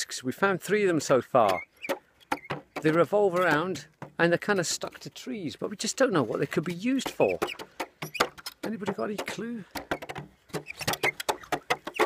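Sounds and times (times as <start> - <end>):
wooden disc clicking and knocking: 1.4 - 12.0.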